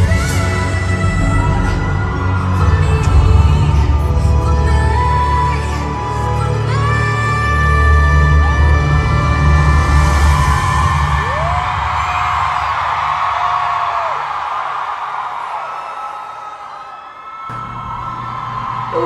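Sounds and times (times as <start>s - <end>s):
audience cheering and whooping: 10.0s - 19.0s.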